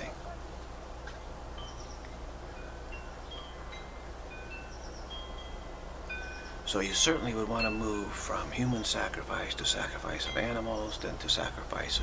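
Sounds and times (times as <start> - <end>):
low background hum: 0.0 - 12.0
wind chimes ringing: 1.5 - 12.0.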